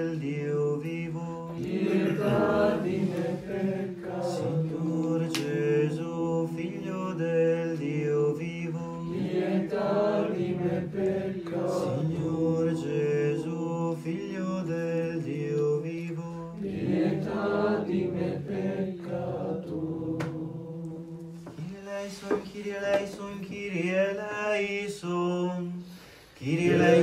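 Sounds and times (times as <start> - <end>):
choir chanting slow melody: 0.0 - 22.4, 26.4 - 27.0.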